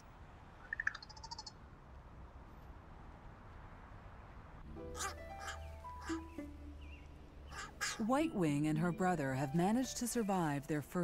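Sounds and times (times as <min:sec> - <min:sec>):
soft bird calls: 0:04.9 - 0:08.1
high bird trill: 0:04.9 - 0:08.2.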